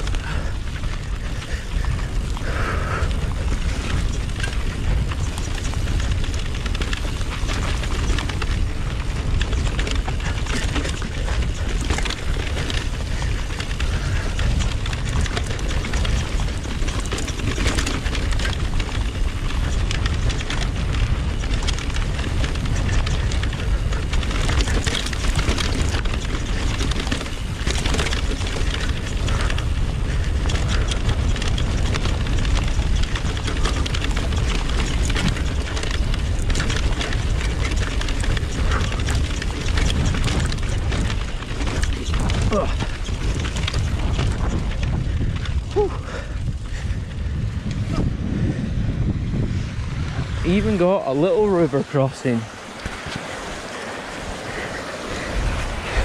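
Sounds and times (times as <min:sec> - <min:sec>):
bike clattering over rocks: 0:00.0 - 0:48.1, 0:52.6 - 0:56.0
wind buffeting microphone: 0:00.0 - 0:56.0.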